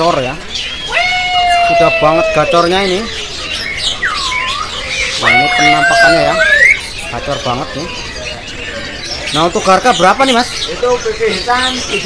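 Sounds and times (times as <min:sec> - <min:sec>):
bird singing whistled notes: 0:00.0 - 0:12.0.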